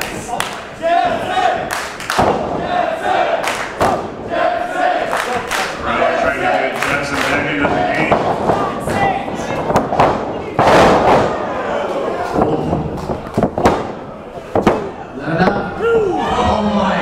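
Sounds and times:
crowd shouting: 0:00.0 - 0:10.6.

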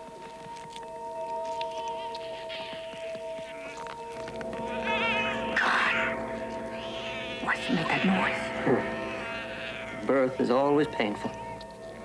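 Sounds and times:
sustained film score tones: 0:00.0 - 0:12.0
cat yowling and screeching: 0:04.7 - 0:11.6.

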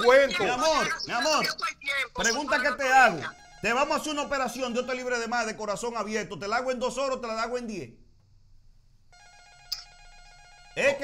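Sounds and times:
telephone ringing faintly: 0:03.2 - 0:06.0, 0:09.2 - 0:11.0.

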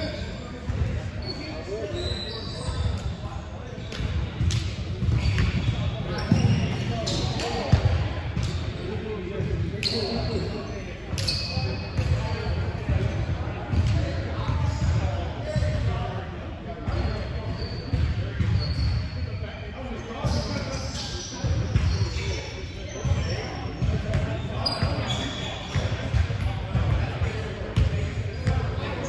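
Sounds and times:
players' voices: 0:00.0 - 0:29.0
shoe squeaks: 0:01.1 - 0:03.2, 0:05.1 - 0:07.7, 0:09.8 - 0:12.1, 0:16.9 - 0:19.2, 0:19.9 - 0:26.0.

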